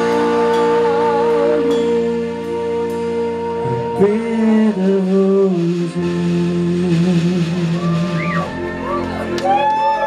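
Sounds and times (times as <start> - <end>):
rock band holding sustained chord: 0.0 - 10.0.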